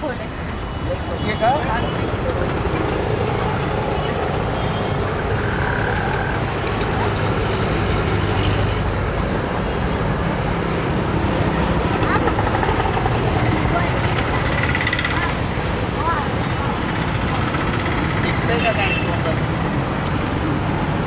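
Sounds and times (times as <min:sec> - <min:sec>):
road traffic noise: 0:00.0 - 0:21.0
indistinct voices: 0:11.2 - 0:19.7.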